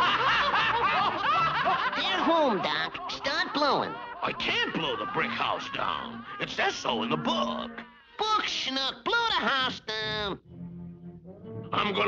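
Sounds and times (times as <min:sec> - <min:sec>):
cartoon pigs laughing: 0:00.0 - 0:07.8.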